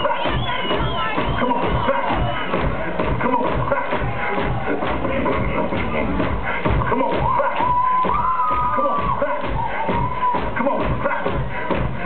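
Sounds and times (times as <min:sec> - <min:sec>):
beatboxing through speakers: 0:00.0 - 0:12.0.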